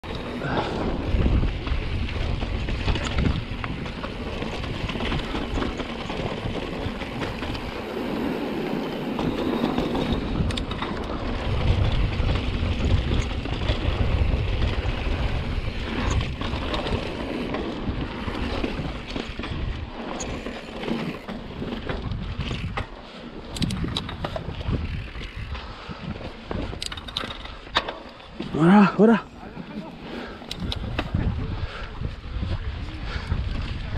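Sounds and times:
bike clicking and knocking: 0:00.0 - 0:28.8, 0:29.8 - 0:31.4
bike tyres on rock: 0:00.1 - 0:33.9
wind buffeting microphone: 0:00.1 - 0:33.9.

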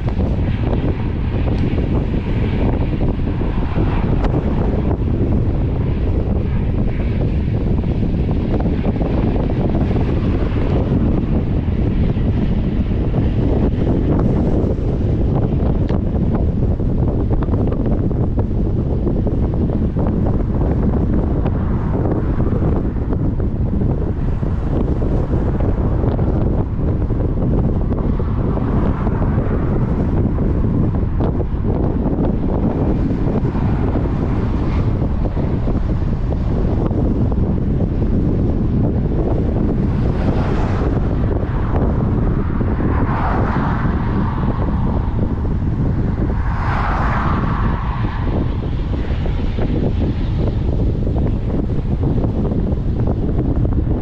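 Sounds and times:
strong wind buffeting microphone: 0:00.0 - 0:54.0.

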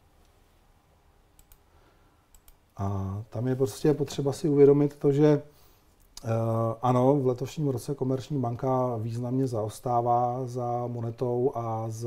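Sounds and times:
faint computer clicks: 0:01.4 - 0:01.7, 0:02.3 - 0:02.8.

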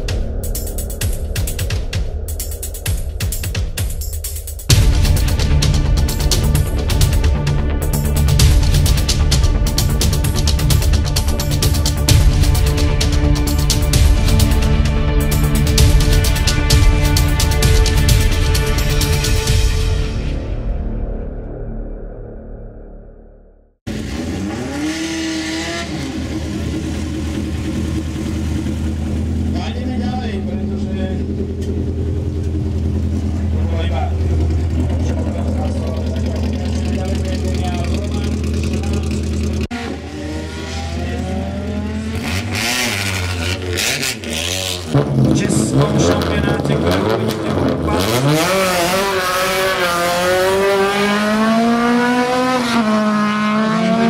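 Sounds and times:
car engine idling and revving: 0:00.0 - 0:22.4, 0:23.8 - 0:54.0.

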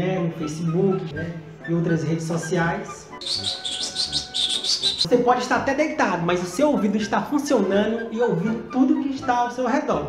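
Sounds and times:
high bird-like chirps: 0:03.2 - 0:05.1.

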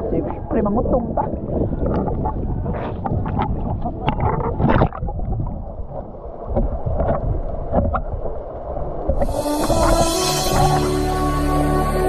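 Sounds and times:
muffled underwater sound: 0:00.0 - 0:10.8
wind on microphone: 0:00.0 - 0:11.4
sea water splashing: 0:00.0 - 0:11.6.

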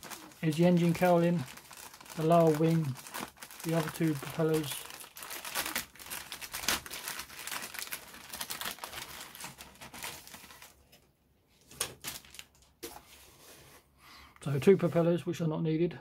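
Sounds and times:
plastic bag crinkling: 0:00.0 - 0:11.0, 0:11.7 - 0:12.7.

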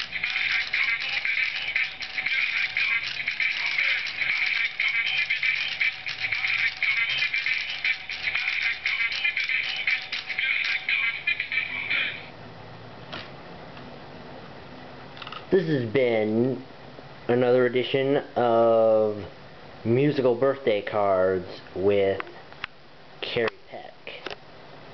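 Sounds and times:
greeting card chip playing song: 0:00.0 - 0:12.3.

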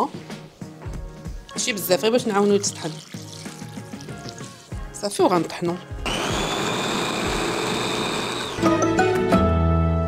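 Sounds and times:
soft background music: 0:00.0 - 0:06.1
water pouring into glass bowl: 0:01.4 - 0:04.8.

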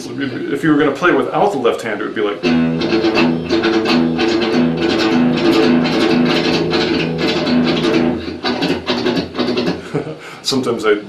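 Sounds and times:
electric guitar picking open strings: 0:02.2 - 0:09.8.

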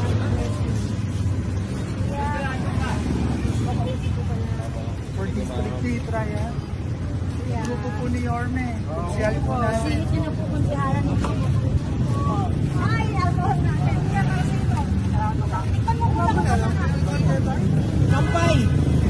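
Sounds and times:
engines and street traffic rumble: 0:00.0 - 0:19.0
people talking: 0:02.0 - 0:06.6, 0:07.4 - 0:18.7.

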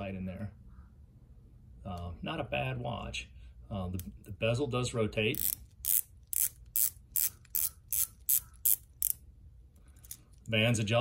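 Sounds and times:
watch bezel ratcheting clicks: 0:05.3 - 0:09.2, 0:10.0 - 0:10.5.

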